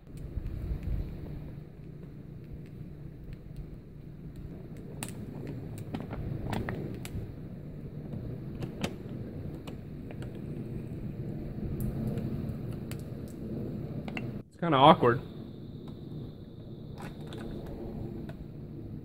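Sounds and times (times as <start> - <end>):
low steady rumble: 0.0 - 19.0.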